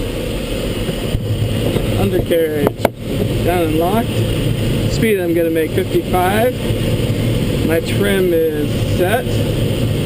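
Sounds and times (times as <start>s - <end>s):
airflow rushing over canopy: 0.0s - 10.0s.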